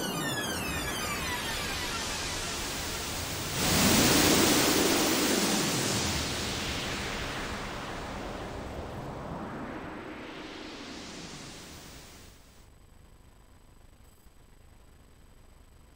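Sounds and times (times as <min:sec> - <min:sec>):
synthesizer noise with filter sweep: 0:00.0 - 0:12.7.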